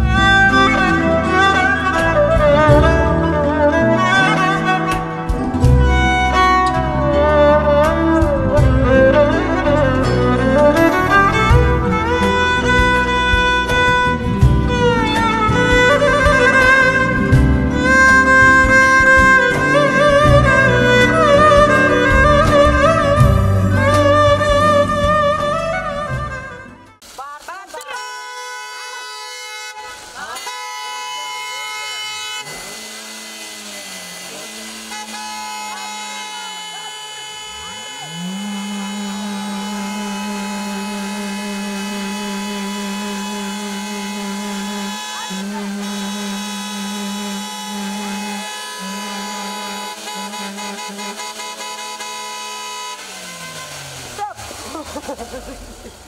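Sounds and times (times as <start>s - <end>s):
car horns honking: 27.8s - 56.0s.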